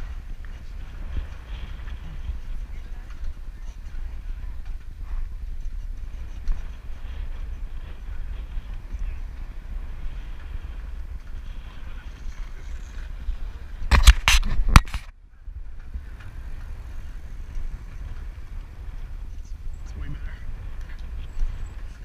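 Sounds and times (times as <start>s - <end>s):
wind rumble: 0.0s - 22.0s.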